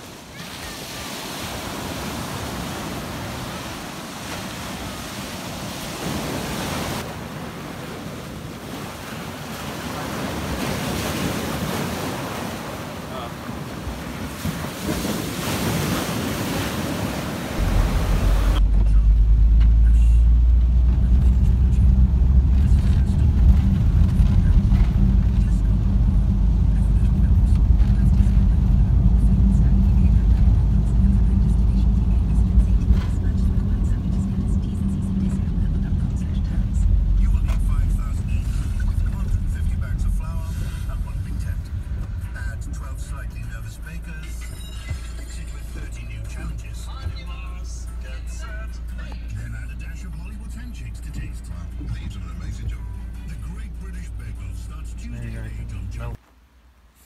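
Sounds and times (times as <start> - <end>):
waves breaking on a beach: 0.0 - 18.6
van engine rumble from inside cabin: 17.6 - 56.2.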